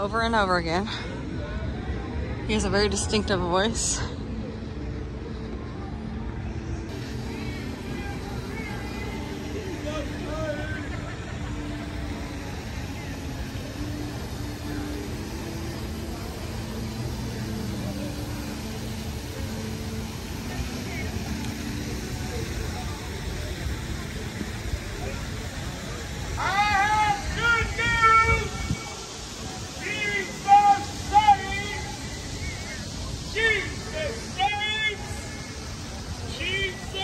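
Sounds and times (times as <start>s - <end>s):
faint distant voices: 0.0s - 37.0s
traffic rumble: 0.0s - 37.0s
wind: 0.0s - 37.0s.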